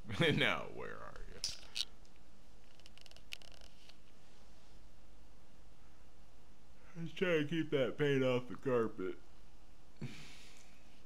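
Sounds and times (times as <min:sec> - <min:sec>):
low hiss: 0:00.0 - 0:11.0.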